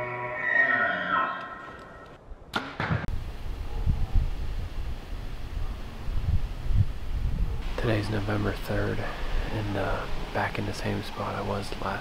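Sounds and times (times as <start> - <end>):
outdoor hiss: 3.1 - 12.0.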